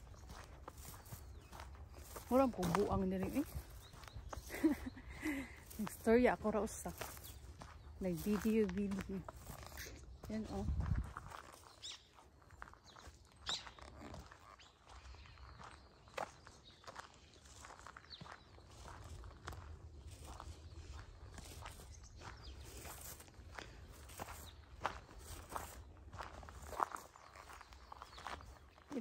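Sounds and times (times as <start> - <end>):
footsteps on gravel path: 0.0 - 29.0.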